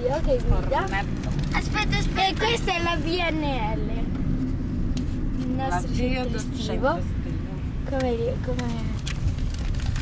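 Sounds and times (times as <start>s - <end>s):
engine and road noise rumble: 0.0s - 10.0s.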